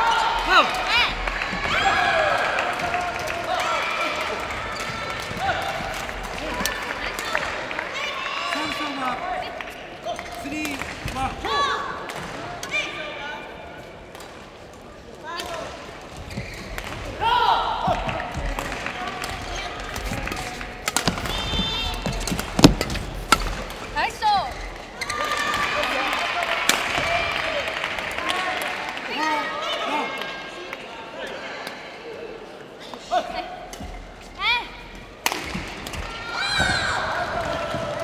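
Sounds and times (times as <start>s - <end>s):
voices in a hall: 0.0s - 38.0s
shoe squeaks on court floor: 16.2s - 16.8s.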